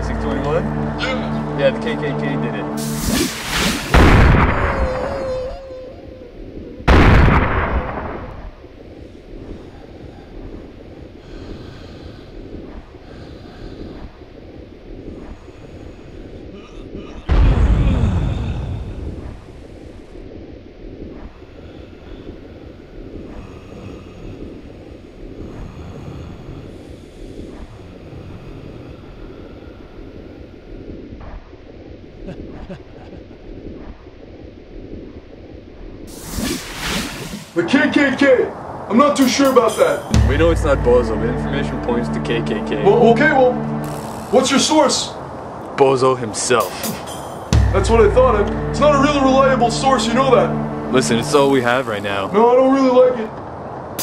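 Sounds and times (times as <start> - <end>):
steady low rumble: 0.0 - 36.3, 38.5 - 54.0
loud sudden booms: 2.8 - 5.5, 6.9 - 8.6, 17.3 - 19.5, 46.7 - 52.2.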